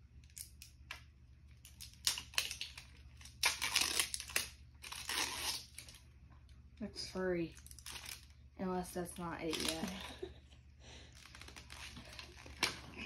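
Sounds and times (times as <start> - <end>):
plastic wrapping tearing and crinkling: 0.2 - 6.2, 7.5 - 8.4, 9.1 - 10.3, 11.0 - 13.0.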